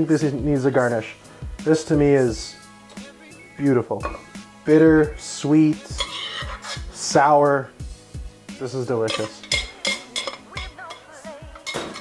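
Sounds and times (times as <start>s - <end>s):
metal spoon scraping saucepan: 5.9s - 7.1s, 9.0s - 12.0s.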